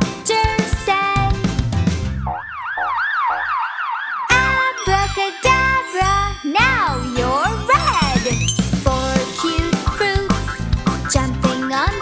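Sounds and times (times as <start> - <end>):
children's song music: 0.0 - 2.1, 4.3 - 12.0
cartoon siren whoop: 2.3 - 4.4.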